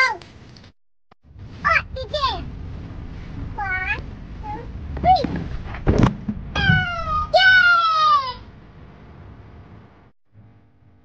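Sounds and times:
young child crying out: 0:06.6 - 0:08.4.

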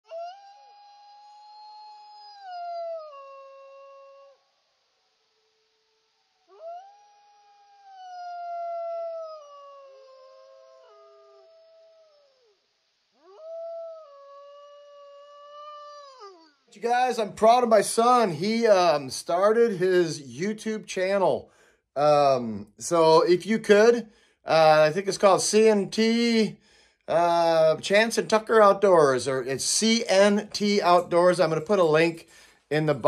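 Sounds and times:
wolf howling: 0:00.1 - 0:04.4, 0:06.4 - 0:12.5, 0:13.2 - 0:16.5.

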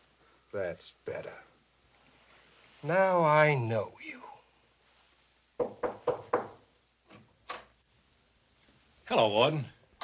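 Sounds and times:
knocks on wooden door: 0:05.6 - 0:06.6.

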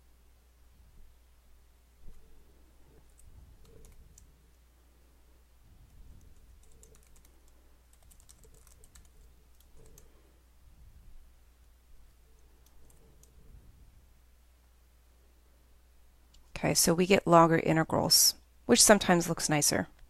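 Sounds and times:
faint typing on keyboard: 0:02.0 - 0:04.7, 0:05.7 - 0:10.4, 0:11.6 - 0:13.6.

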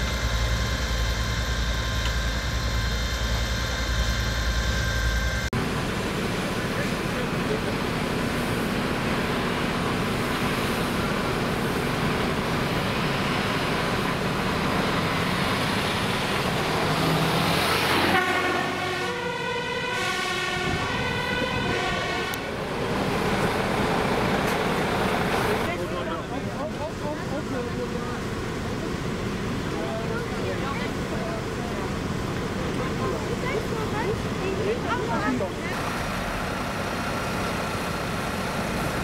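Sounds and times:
fire engine warning signal: 0:00.0 - 0:12.4, 0:17.6 - 0:25.7
diesel engines running: 0:00.0 - 0:39.0.

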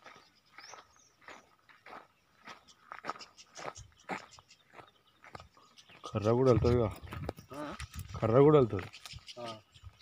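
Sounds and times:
footsteps crunching on twigs: 0:00.0 - 0:09.4.

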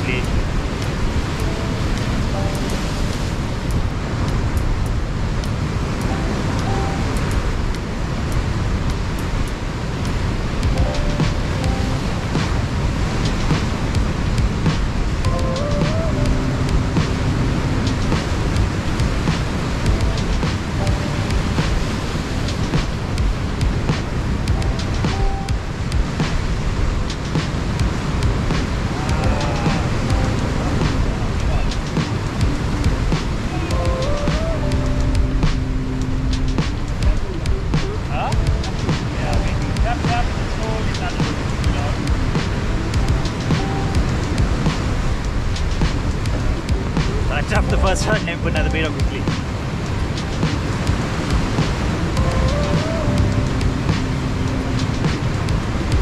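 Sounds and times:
surf breaking on rocks: 0:00.0 - 0:16.1, 0:36.3 - 0:53.0
faint background music: 0:00.0 - 0:56.0
wind on microphone: 0:00.0 - 0:56.0.

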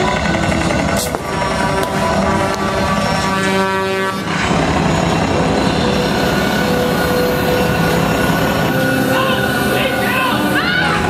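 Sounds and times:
held horn-like chord: 0:01.0 - 0:04.6, 0:05.4 - 0:11.0.

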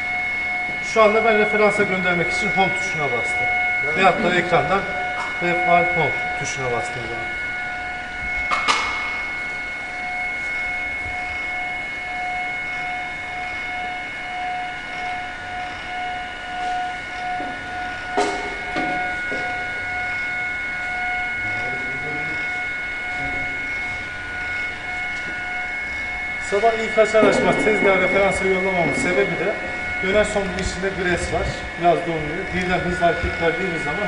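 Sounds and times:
stepper motor whine: 0:00.0 - 0:34.0.

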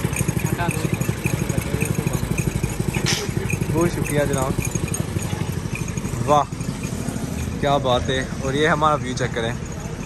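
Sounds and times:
small engine running: 0:00.0 - 0:10.0.

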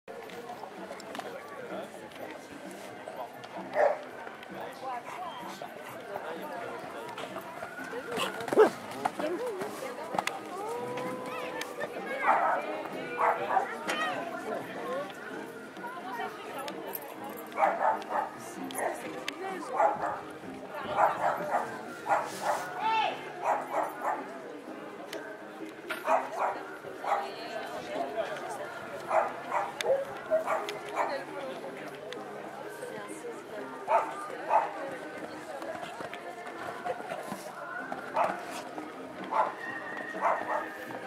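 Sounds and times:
dog barking: 0:03.8 - 0:04.0, 0:13.2 - 0:13.7, 0:17.6 - 0:18.3, 0:19.8 - 0:20.2, 0:21.0 - 0:22.3, 0:23.4 - 0:24.2, 0:26.1 - 0:27.2, 0:29.1 - 0:31.1, 0:33.9 - 0:34.8, 0:39.3 - 0:39.6, 0:40.2 - 0:40.7.

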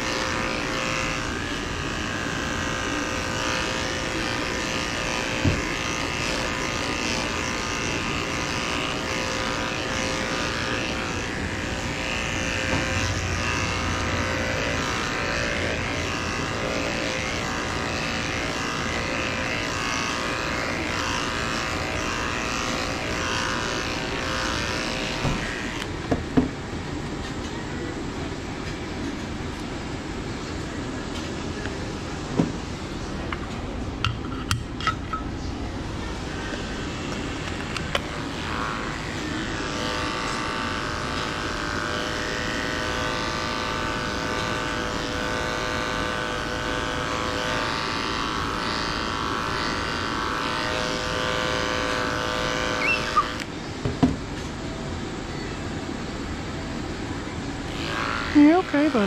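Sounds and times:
electric clippers humming: 0:00.0 - 0:26.4, 0:30.6 - 0:53.6, 0:57.6 - 0:59.0.

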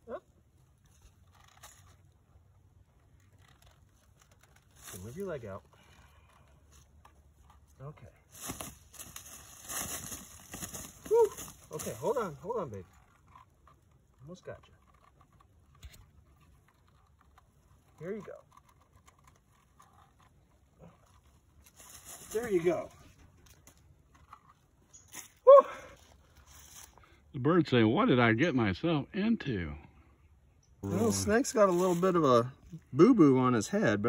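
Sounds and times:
rustling in dry leaves: 0:08.2 - 0:12.6, 0:20.8 - 0:23.8, 0:30.9 - 0:32.4
wings flapping in dry leaves: 0:08.3 - 0:12.2.

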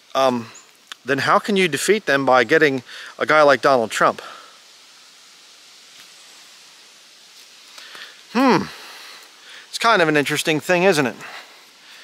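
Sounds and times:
faint steady hiss: 0:00.0 - 0:12.0.

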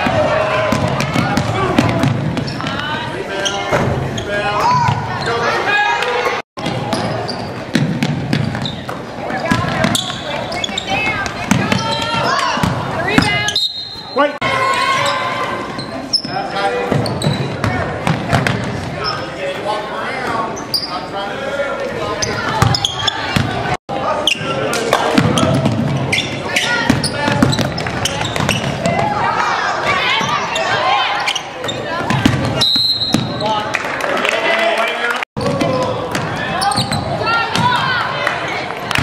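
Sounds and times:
people's voices echoing: 0:00.0 - 0:39.0
basketball bouncing on hardwood floor: 0:07.7 - 0:08.7, 0:11.1 - 0:13.3.

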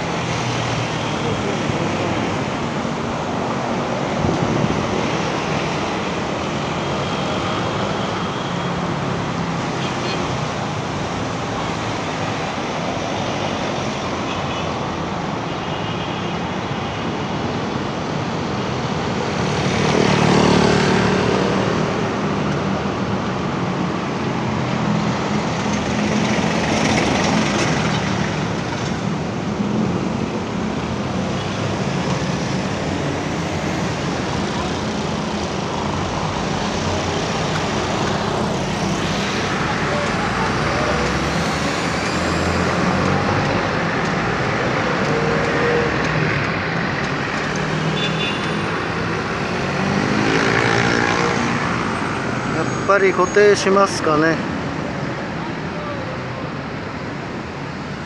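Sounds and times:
cars passing: 0:16.4 - 0:58.0
motorcycles passing: 0:25.9 - 0:54.5.

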